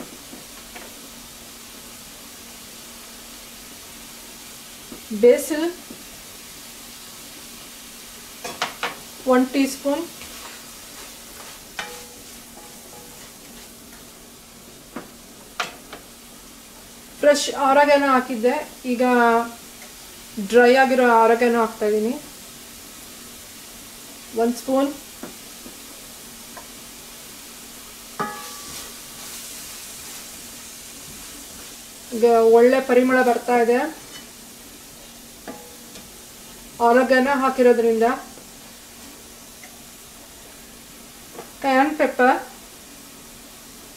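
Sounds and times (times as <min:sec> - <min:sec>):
vegetables sizzling in a frying pan: 0:00.0 - 0:43.9
spatula stirring in a pan: 0:09.8 - 0:14.2, 0:25.1 - 0:40.6
spatula stirring: 0:10.2 - 0:14.0, 0:28.2 - 0:30.4
spatula knocking against pan: 0:28.2 - 0:28.6.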